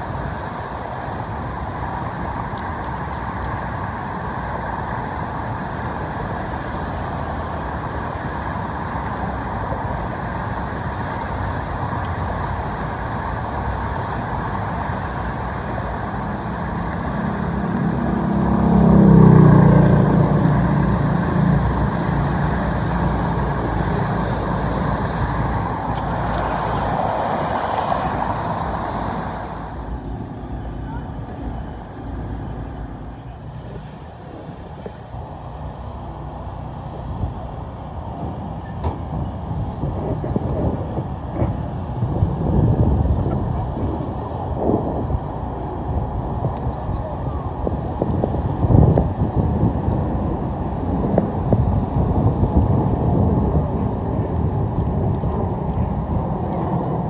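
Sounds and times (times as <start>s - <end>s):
vehicles passing: 0.0s - 57.0s.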